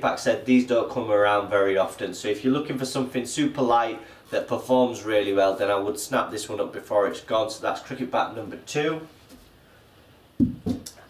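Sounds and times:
cricket bats knocking: 0:10.4 - 0:10.9.

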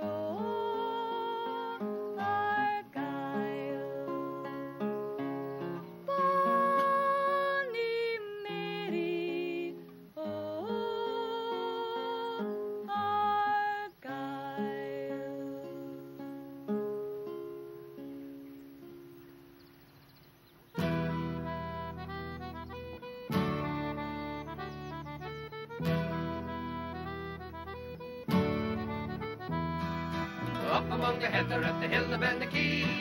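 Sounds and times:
woman singing folk ballad: 0:00.0 - 0:16.9, 0:30.5 - 0:33.0
acoustic guitar: 0:00.0 - 0:19.8, 0:20.6 - 0:33.0.

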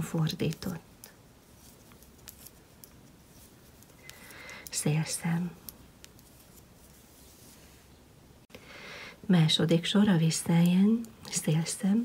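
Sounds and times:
knitting needles clicking: 0:00.2 - 0:07.0.

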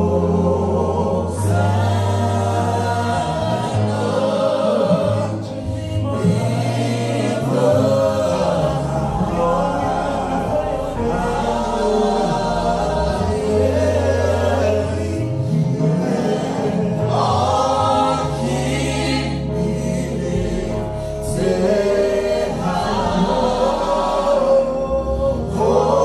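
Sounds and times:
group singing gospel song: 0:00.0 - 0:26.0
instrumental accompaniment: 0:00.0 - 0:26.0.

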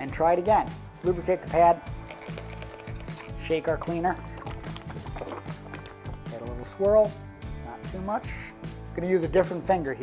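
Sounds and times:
background music: 0:00.0 - 0:10.0
liquid sloshing in shaken bottle: 0:01.9 - 0:06.7.

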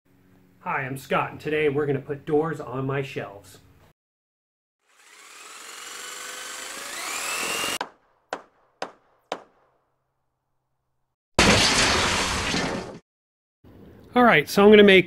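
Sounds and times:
power tool motor whining: 0:04.8 - 0:07.8
sharp knocks: 0:07.8 - 0:09.7.

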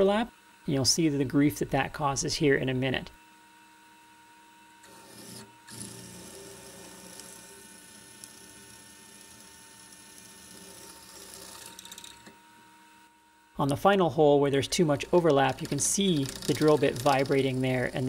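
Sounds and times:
faint steady machine whine: 0:00.0 - 0:18.0
drill bit cutting metal: 0:04.8 - 0:12.3, 0:14.8 - 0:18.0.

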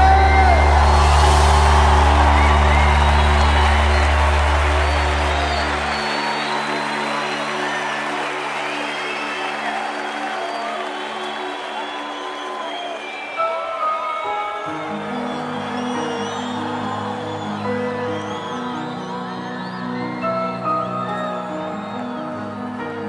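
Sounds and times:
crowd cheering and whooping: 0:00.0 - 0:23.0.

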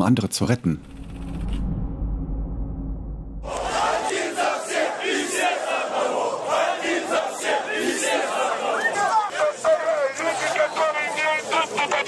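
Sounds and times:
low rumble: 0:00.6 - 0:04.1
crowd shouting: 0:03.4 - 0:12.0.

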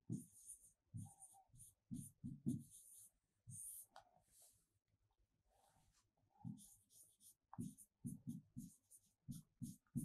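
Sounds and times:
pen tapping and scratching on screen: 0:00.0 - 0:04.0, 0:06.4 - 0:10.0.

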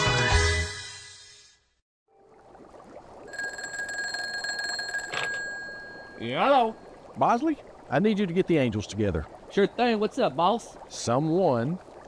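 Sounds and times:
hot tub water bubbling: 0:02.2 - 0:04.4, 0:05.4 - 0:12.0
telephone bell ringing: 0:03.3 - 0:06.4.

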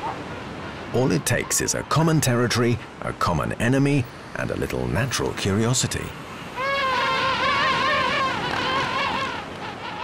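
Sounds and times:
wavering animal call: 0:06.5 - 0:10.0.

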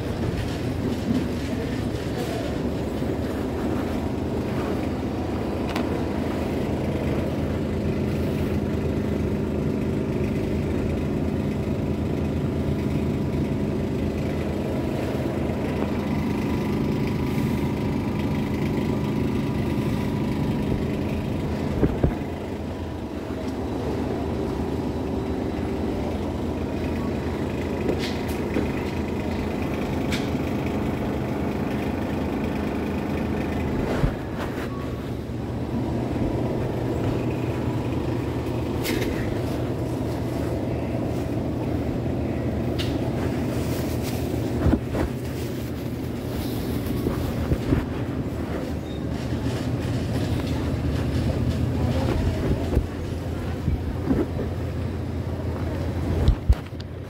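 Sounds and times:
supermarket background rumble: 0:00.0 - 0:57.0.

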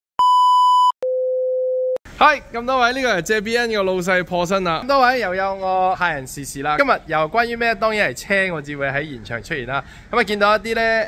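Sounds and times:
pure lower electronic tone: 0:00.2 - 0:02.0.

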